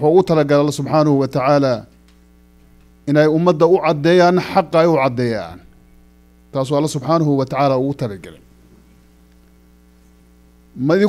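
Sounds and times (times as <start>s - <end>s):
man talking: 0.0s - 1.9s, 3.1s - 5.7s, 6.6s - 8.4s, 10.8s - 11.0s
electrical mains hum: 0.0s - 11.0s.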